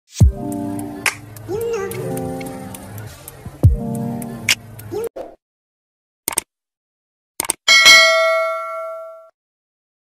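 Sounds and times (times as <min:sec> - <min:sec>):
notification bell ding: 0:07.7 - 0:09.3.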